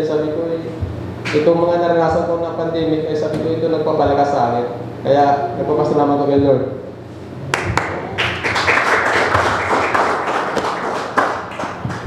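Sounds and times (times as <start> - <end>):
group clapping: 7.5 - 12.0.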